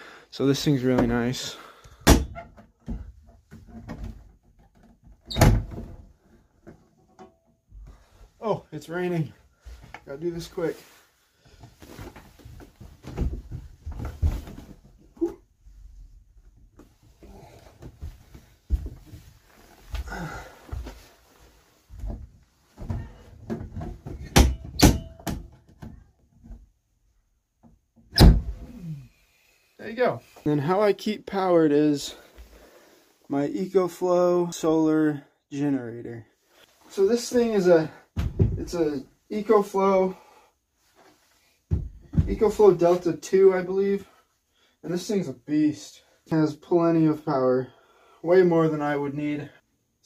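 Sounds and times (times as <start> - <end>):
knocks and rustling: 11.5 - 15.4, 16.7 - 21.1, 21.9 - 26.7, 38.2 - 38.8, 41.7 - 42.6
heavy thumps: 38.2 - 38.8.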